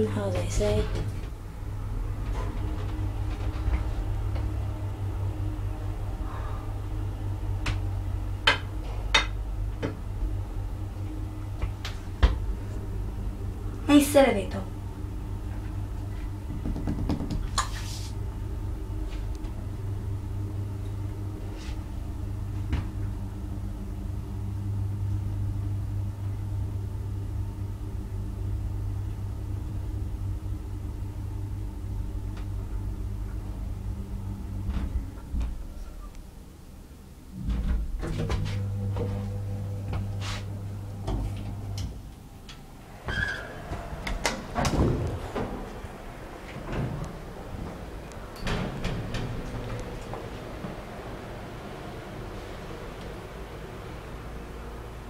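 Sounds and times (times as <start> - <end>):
elevator doors clicking and clunking: 0.0 - 17.7, 29.8 - 55.0
elevator running hum: 0.0 - 55.0.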